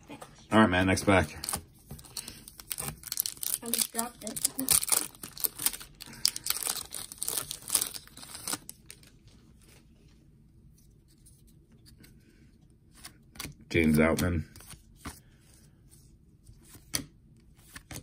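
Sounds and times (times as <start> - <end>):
foil wrapper crinkling and tearing: 2.2 - 9.2.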